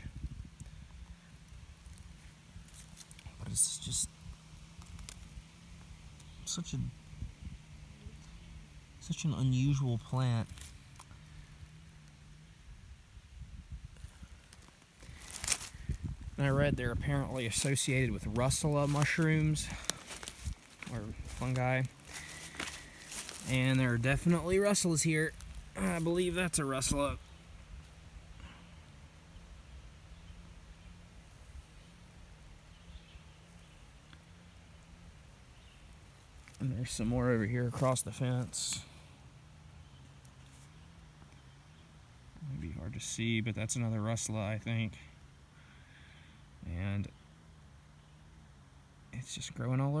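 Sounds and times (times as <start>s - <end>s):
low rumble on microphone: 0.0s - 39.2s
faint low hum: 0.0s - 50.0s.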